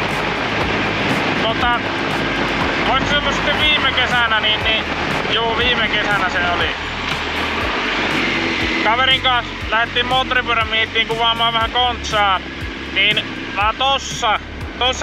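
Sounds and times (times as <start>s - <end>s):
wind noise on microphone: 0.0s - 10.4s
motorcycle engine hum: 0.0s - 15.0s
man talking: 1.4s - 1.9s, 2.8s - 6.8s, 8.8s - 12.4s, 13.0s - 15.0s.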